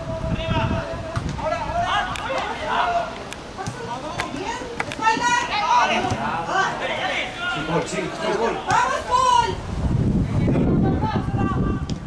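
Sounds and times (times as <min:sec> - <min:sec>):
voices shouting: 0:00.0 - 0:09.6.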